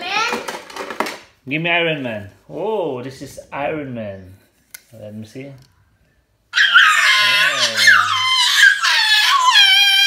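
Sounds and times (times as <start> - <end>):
child squealing: 6.6 - 10.0.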